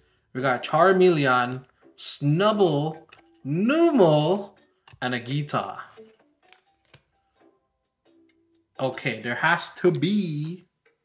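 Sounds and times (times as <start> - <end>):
faint background music: 0.0 - 11.0
trading cards clicking: 1.4 - 1.8, 2.8 - 3.5, 4.8 - 7.3.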